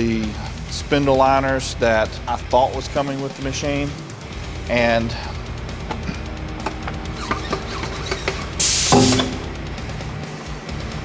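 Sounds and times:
guitar and drums music: 8.3s - 10.3s
loud burst of hiss: 8.6s - 9.4s.

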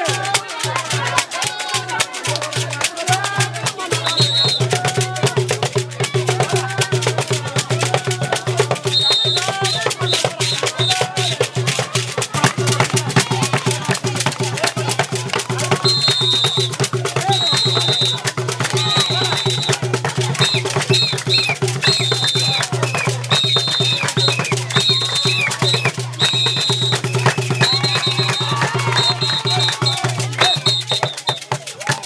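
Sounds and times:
crowd hand-clapping: 0.0s - 32.0s
fast hand-drum rhythm: 0.0s - 32.0s
voices singing along: 0.0s - 32.0s.

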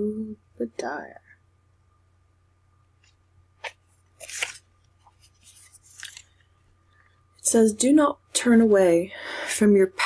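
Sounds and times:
book pages flipping: 3.0s - 6.6s.

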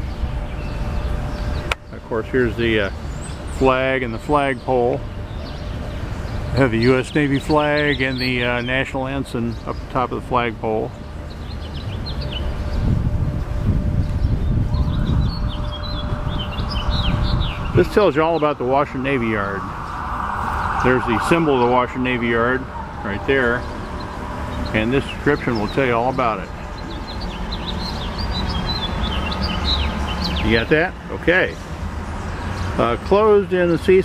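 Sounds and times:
steady low rumble: 0.0s - 30.1s
birds chirping: 0.0s - 34.0s.

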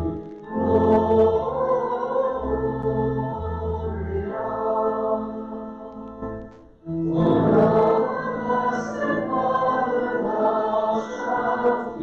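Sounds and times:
choir singing sacred music: 0.0s - 12.0s.

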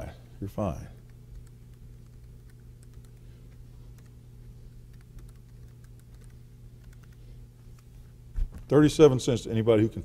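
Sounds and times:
steady low hum: 0.0s - 10.0s
computer keyboard keystrokes: 1.0s - 3.3s, 4.9s - 7.2s.

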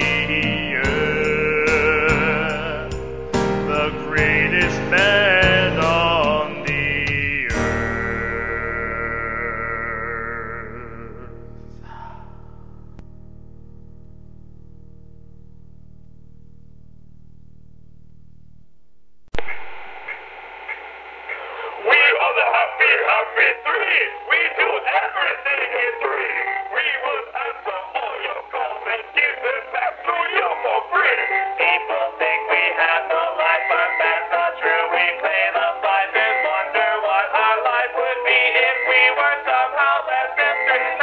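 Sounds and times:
synthesized midi music: 0.0s - 18.1s
telephone line hiss: 19.4s - 41.0s.

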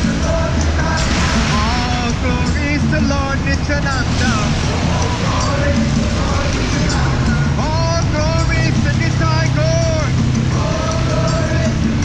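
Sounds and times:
person singing: 0.0s - 12.0s
traffic rumble: 0.0s - 12.0s
wind and road noise: 0.0s - 12.0s.

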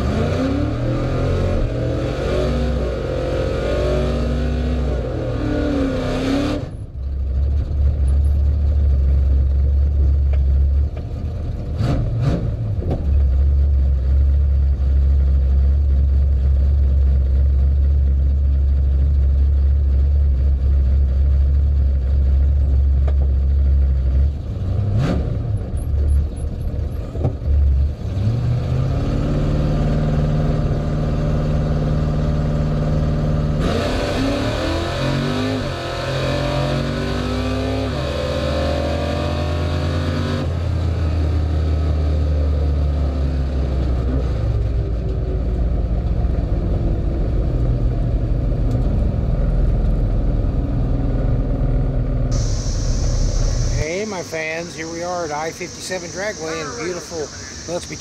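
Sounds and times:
drag car engine revving: 0.0s - 6.8s, 27.7s - 42.2s, 51.8s - 58.0s.

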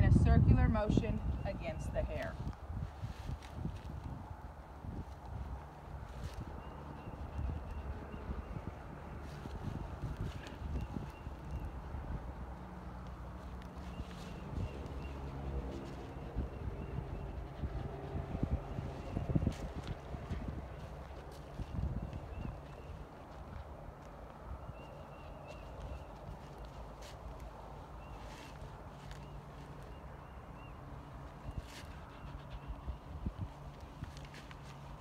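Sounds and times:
comb scrubbing horse hair: 5.2s - 24.2s.

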